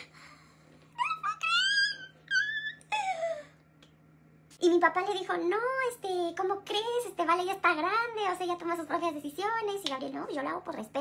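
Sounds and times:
woman squealing with excitement: 1.0 - 3.5.

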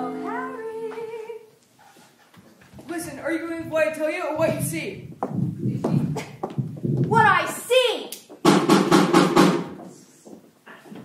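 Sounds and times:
rapid drum strikes: 8.4 - 9.8.

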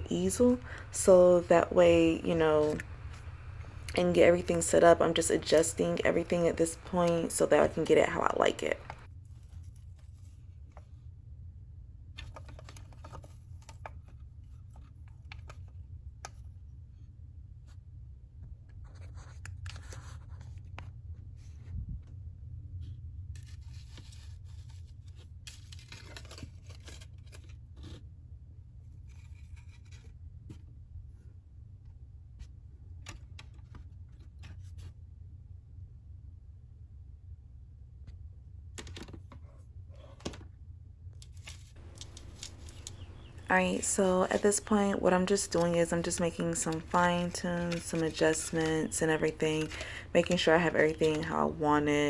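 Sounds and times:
steady low hum: 0.0 - 25.7, 28.0 - 52.0.

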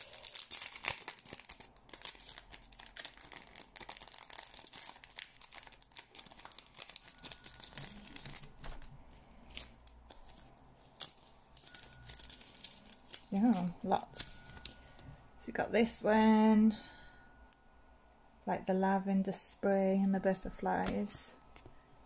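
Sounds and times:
plastic packet crinkling: 0.0 - 15.0.

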